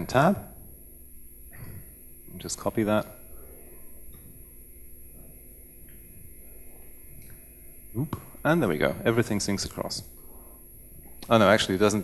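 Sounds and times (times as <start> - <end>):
low amplification hum: 0.0 - 12.0.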